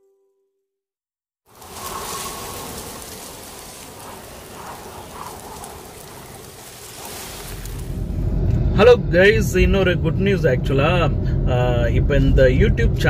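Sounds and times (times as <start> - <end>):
rain hiss: 1.5 - 8.2
car engine and road rumble: 1.5 - 13.0.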